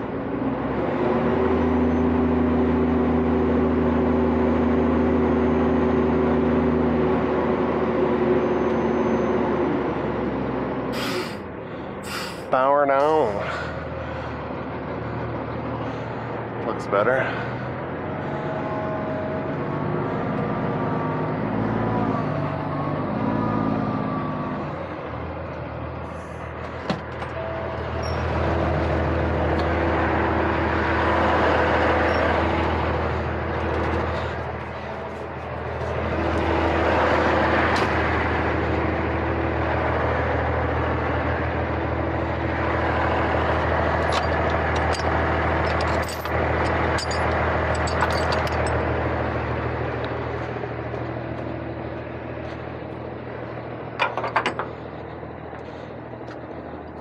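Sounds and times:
truck diesel engine running: 0:00.0 - 0:57.0.

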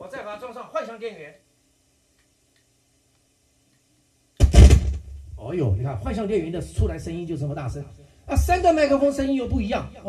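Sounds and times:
loud pop and rumble through speakers: 0:04.4 - 0:05.3.

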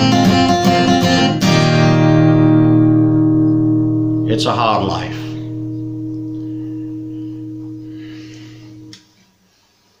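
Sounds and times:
acoustic guitar chord ringing: 0:00.0 - 0:09.0.

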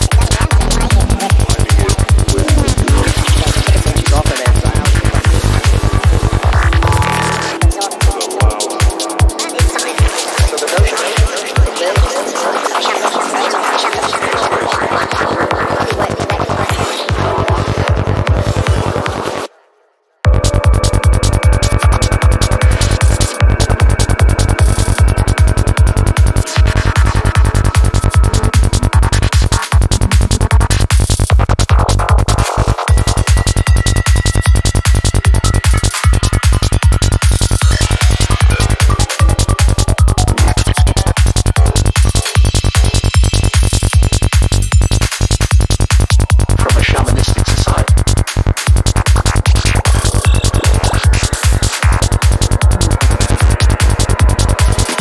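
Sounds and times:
kick drum: 0:00.0 - 0:10.1, 0:20.3 - 0:46.9, 0:47.9 - 0:55.0
synth lines: 0:00.0 - 0:13.1, 0:17.1 - 0:31.6
steady hi-hats: 0:00.0 - 0:16.1, 0:20.3 - 0:55.0
fast rolling bassline: 0:00.0 - 0:19.5, 0:20.3 - 0:55.0
electronic trance music: 0:00.0 - 0:19.6, 0:20.2 - 0:55.0.

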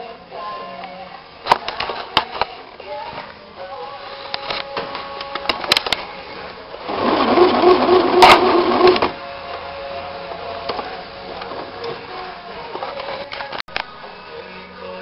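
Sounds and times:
sewing machine stitching: 0:06.8 - 0:09.1.

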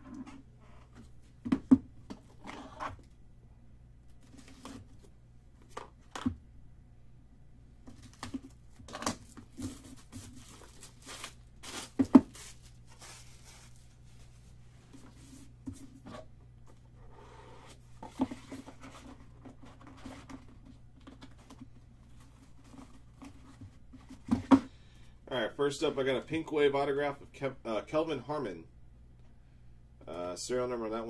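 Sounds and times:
plastic shrink wrap tearing: 0:10.0 - 0:14.0.

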